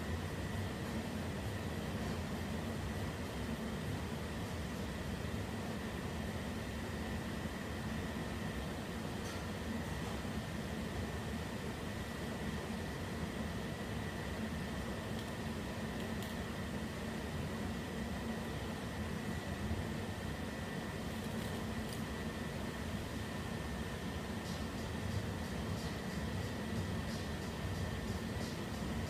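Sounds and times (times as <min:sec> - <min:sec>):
air conditioning hum and hiss: 0:00.0 - 0:29.0.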